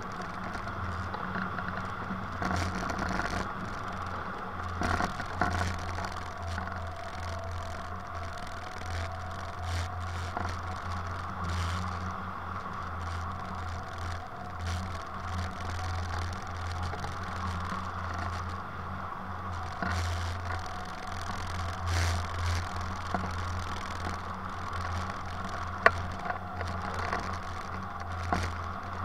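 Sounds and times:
constant low hum: 0:00.0 - 0:29.0
wind noise on microphone: 0:00.0 - 0:29.0.

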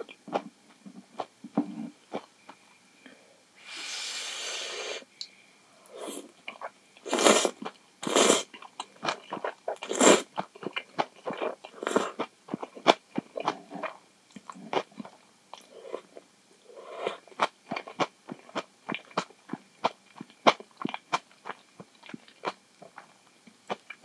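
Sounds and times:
wet chewing with mouth clicks: 0:07.6 - 0:16.2, 0:17.1 - 0:24.0.

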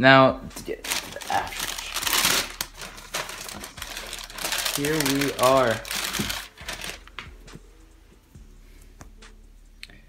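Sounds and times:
tissue paper rustling and crinkling: 0:00.6 - 0:07.2.

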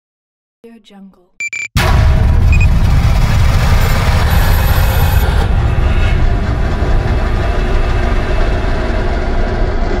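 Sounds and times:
deep noisy rumble: 0:01.8 - 0:10.0.

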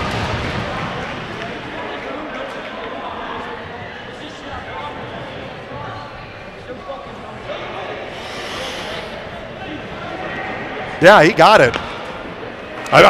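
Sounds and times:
ice rink background noise: 0:00.0 - 0:13.0
brief hiss: 0:08.1 - 0:09.2.

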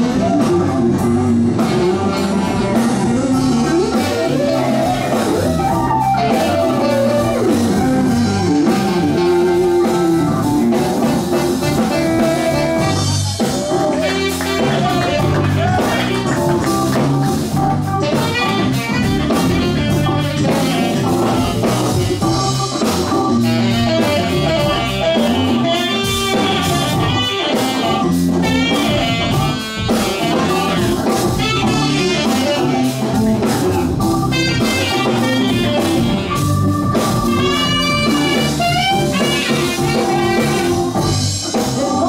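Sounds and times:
drum kit: 0:00.0 - 0:42.0
electric bass: 0:00.0 - 0:42.0
keyboard: 0:00.0 - 0:42.0
saxophone: 0:00.0 - 0:42.0.

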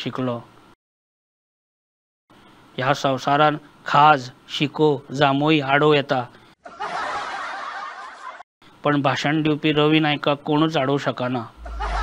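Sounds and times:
crowd laughing: 0:06.7 - 0:08.4, 0:11.6 - 0:12.0.

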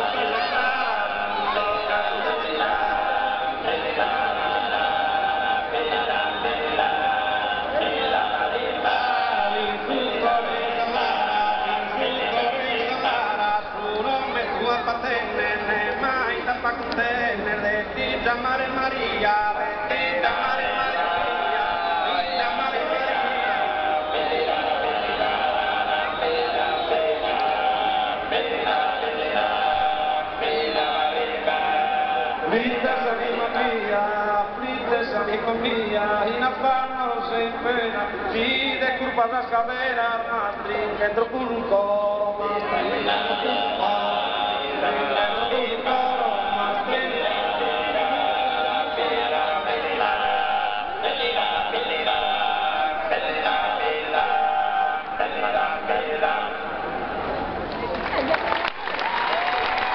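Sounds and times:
male voices chant-like singing: 0:00.0 - 0:57.1.

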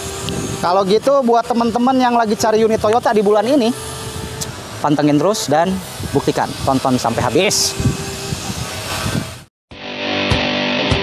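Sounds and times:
steady rushing noise: 0:00.0 - 0:09.5
guitar music: 0:09.7 - 0:11.0.

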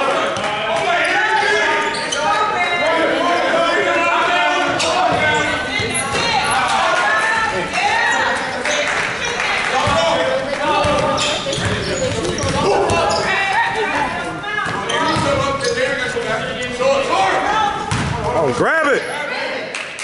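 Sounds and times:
voices calling out in echoing gym: 0:00.0 - 0:20.0.

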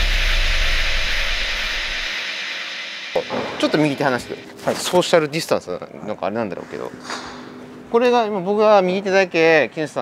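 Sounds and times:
deep bass tone sliding downward: 0:00.0 - 0:04.4
hissing noise sweep: 0:00.0 - 0:04.6.

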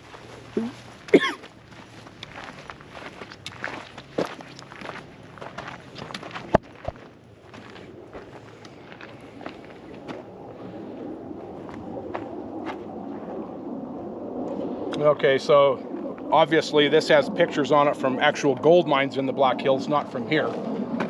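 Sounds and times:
footsteps on gravel: 0:00.0 - 0:10.2
low steady noise: 0:00.0 - 0:21.0.

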